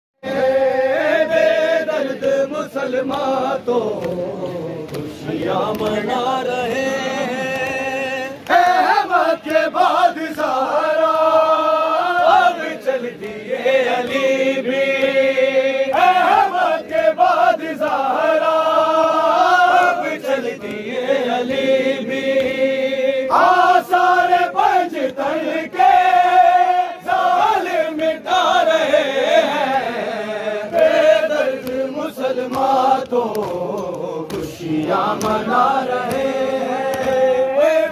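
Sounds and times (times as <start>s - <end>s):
men chanting a lament: 0.2s - 37.9s
hands slapping chests: 3.0s - 6.2s, 30.6s - 37.5s.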